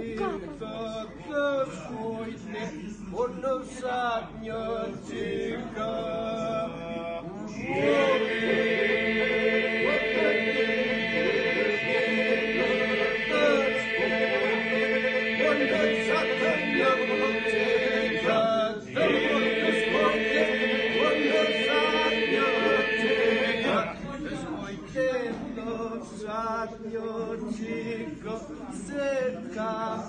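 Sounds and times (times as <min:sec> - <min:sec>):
men singing polyphony: 0:07.6 - 0:24.4.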